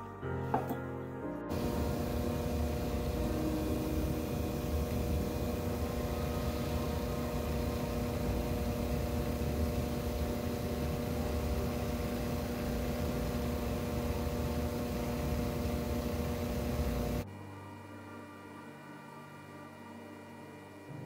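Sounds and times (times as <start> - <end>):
rotary tool motor running: 1.5 - 17.2.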